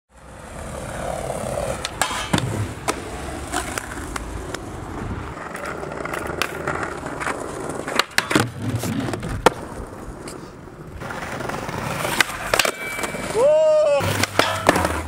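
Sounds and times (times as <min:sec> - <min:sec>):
skateboard wheels rolling on bricks: 0:00.1 - 0:15.0
skateboard clicks and knocks: 0:00.2 - 0:15.0
skateboard striking a ledge: 0:01.7 - 0:04.0, 0:05.4 - 0:09.7, 0:11.4 - 0:13.4, 0:14.0 - 0:15.0.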